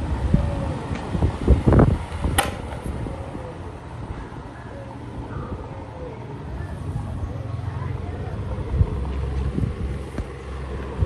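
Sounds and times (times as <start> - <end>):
desk fan airflow on microphone: 0.0 - 11.0.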